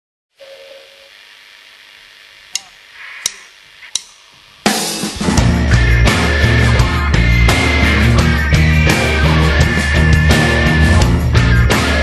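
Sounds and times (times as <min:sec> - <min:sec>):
faint hum: 0:00.4 - 0:08.0
sharp clicks: 0:02.5 - 0:04.2
live rock band: 0:04.7 - 0:12.0.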